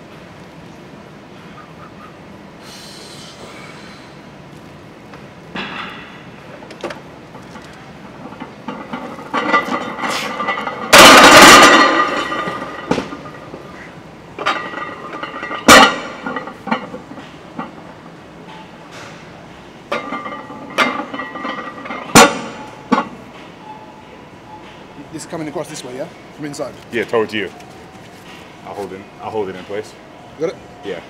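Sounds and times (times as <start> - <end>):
weight plates clanking: 7.9 - 23.8
barbell crashing into rack: 10.8 - 13.3, 15.5 - 16.5.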